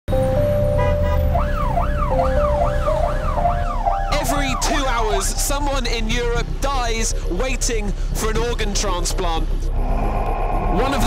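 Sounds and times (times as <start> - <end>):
emergency siren yelping: 0.8 - 5.4
low steady rumble: 2.3 - 11.0.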